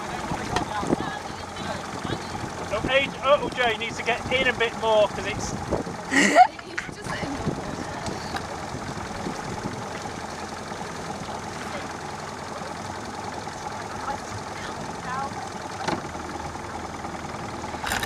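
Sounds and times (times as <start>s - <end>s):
motorboat engine running: 0.0s - 18.0s.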